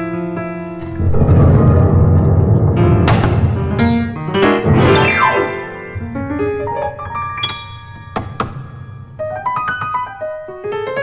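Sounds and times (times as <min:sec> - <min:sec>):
piano notes: 0:00.0 - 0:11.0
knocks on piano body: 0:08.0 - 0:09.9.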